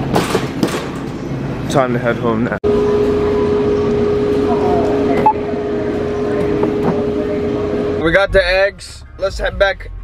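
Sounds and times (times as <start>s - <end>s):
steady hum: 2.6s - 9.1s.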